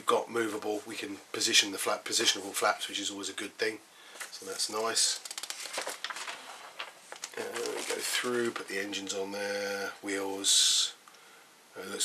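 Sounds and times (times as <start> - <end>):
paper pages turning: 4.2 - 9.1.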